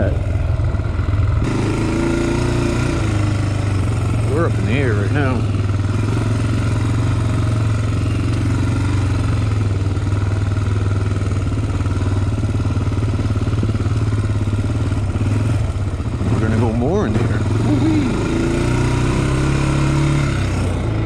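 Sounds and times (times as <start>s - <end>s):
quad bike engine revving: 0.0s - 21.0s.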